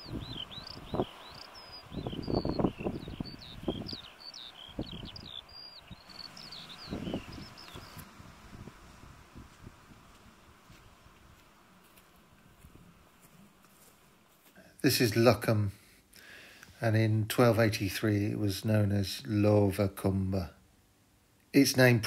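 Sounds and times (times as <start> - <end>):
songbird singing: 0.0 - 8.2
wind gusts on microphone: 0.0 - 11.4.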